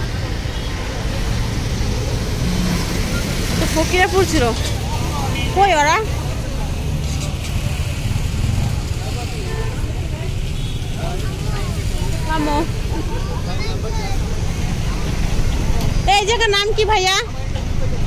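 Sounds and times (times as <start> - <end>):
motorcycle engines rumbling: 0.0 - 18.0
road traffic: 0.0 - 18.0
people talking: 3.4 - 18.0.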